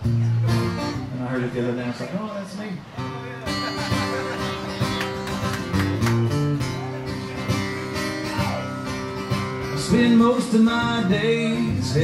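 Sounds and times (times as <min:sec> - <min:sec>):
acoustic guitar strumming: 0:00.0 - 0:02.2, 0:02.8 - 0:12.0
man singing: 0:09.6 - 0:12.0.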